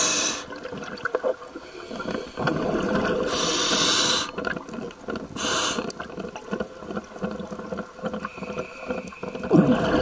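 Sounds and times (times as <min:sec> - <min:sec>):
regulator air hiss: 0:00.0 - 0:00.5, 0:03.3 - 0:04.3, 0:05.4 - 0:05.8
exhaled air bubbling: 0:04.4 - 0:10.0.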